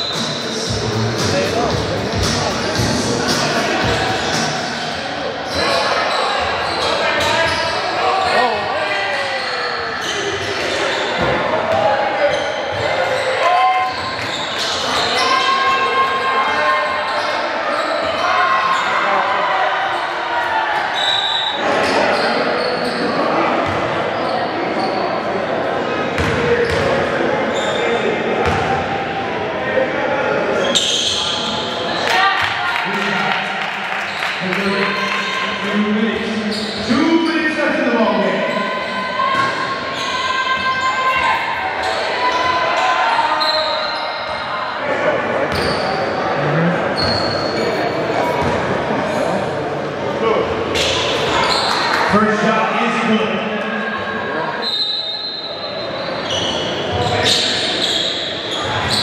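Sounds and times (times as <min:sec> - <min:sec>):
people shouting in a hall: 0:02.4 - 0:59.0
shoe squeaks: 0:04.7 - 0:08.6, 0:09.3 - 0:11.3, 0:17.1 - 0:19.0, 0:20.9 - 0:25.2, 0:30.6 - 0:31.8, 0:36.4 - 0:37.4, 0:43.2 - 0:44.5, 0:45.5 - 0:46.2, 0:46.9 - 0:48.5, 0:50.8 - 0:51.9, 0:54.6 - 0:59.0.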